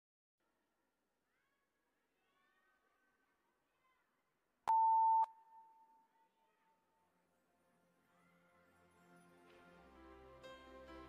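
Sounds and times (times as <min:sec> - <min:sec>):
electronic beep echoing: 0:04.7 - 0:06.0.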